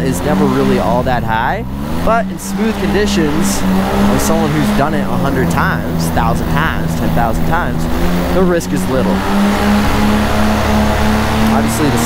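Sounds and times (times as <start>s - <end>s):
paramotor engine drone: 0.0s - 12.0s.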